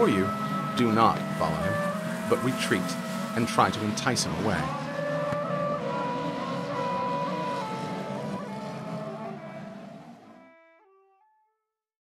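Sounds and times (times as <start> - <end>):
race engines running: 0.0 - 10.3
background music notes: 0.0 - 11.1.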